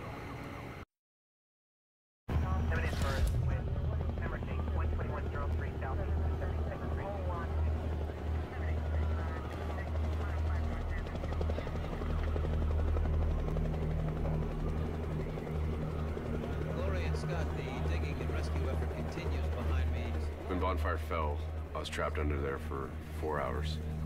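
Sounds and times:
low throbbing rumble: 2.3s - 24.0s.

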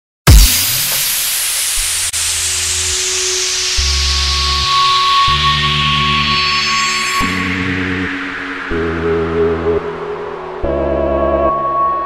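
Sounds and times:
heavy electronic hit: 0.3s - 5.7s
noise sweep downward: 0.3s - 12.0s
steady high synth note: 0.3s - 12.0s.

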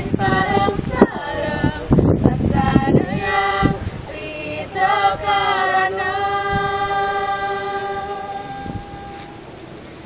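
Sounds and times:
group singing a chord: 0.0s - 9.4s.

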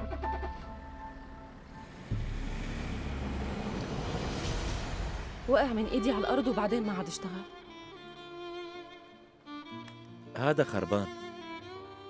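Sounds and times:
drama score with low pulse: 0.0s - 6.4s
car driving away: 1.2s - 5.5s.

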